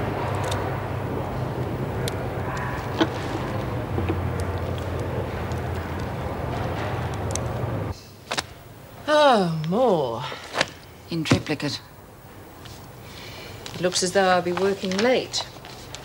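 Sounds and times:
low droning hum: 0.0 - 9.1.

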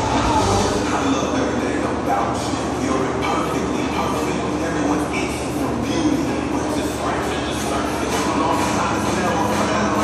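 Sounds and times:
drum fan running: 0.0 - 10.0.

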